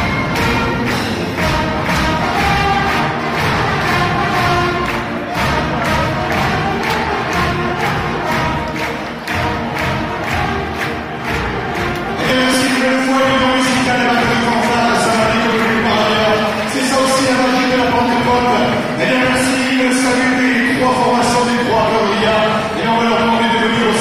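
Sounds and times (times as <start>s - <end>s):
brass band playing: 0.0s - 24.0s
steady drum beat: 0.0s - 24.0s.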